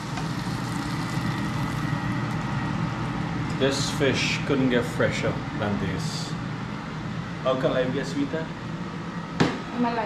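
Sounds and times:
fish frying in hot oil: 0.0s - 2.6s
low even hum: 0.0s - 10.0s.

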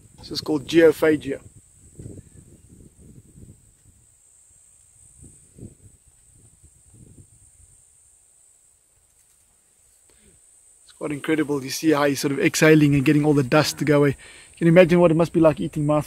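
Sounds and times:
insects chirring: 0.0s - 16.0s.

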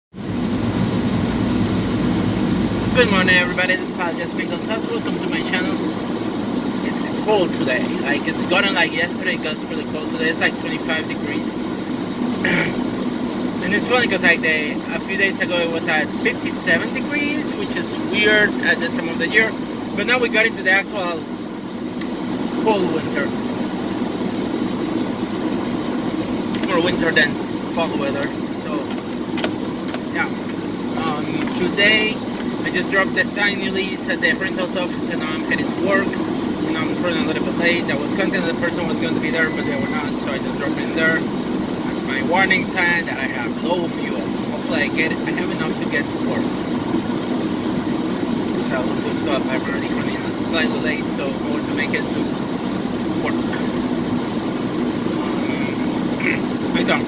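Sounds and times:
car engine humming: 0.1s - 57.0s.

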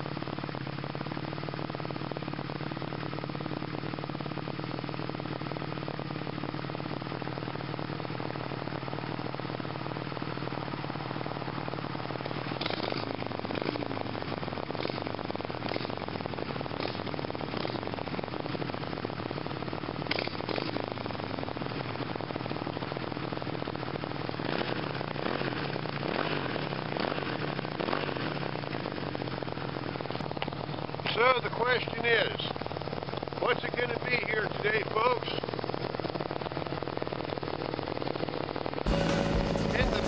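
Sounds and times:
motorcycle engine idling: 0.0s - 40.0s.

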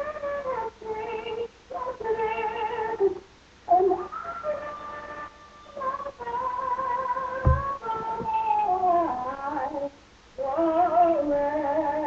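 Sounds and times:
woman singing gospel solo: 0.0s - 12.0s.

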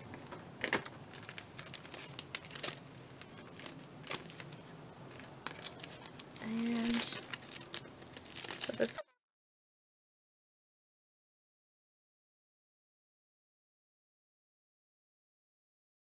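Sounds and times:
plastic packaging crinkling: 0.0s - 9.0s.

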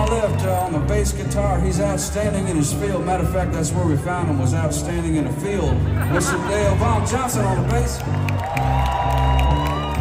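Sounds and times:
live country band: 0.0s - 10.0s
crowd cheering: 6.1s - 10.0s.

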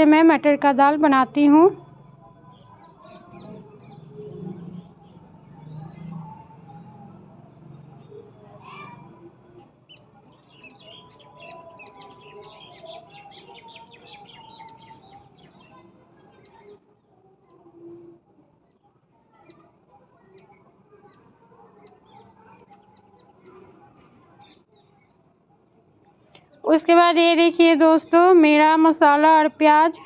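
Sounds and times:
small birds chirping: 2.4s - 30.0s.

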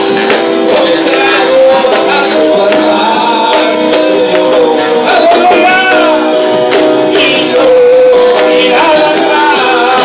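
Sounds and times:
instrumental accompaniment: 0.0s - 10.0s
man singing into a microphone: 0.0s - 10.0s.

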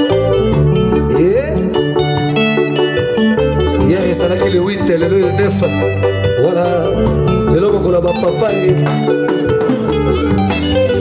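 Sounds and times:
live rumba band: 0.0s - 11.0s.

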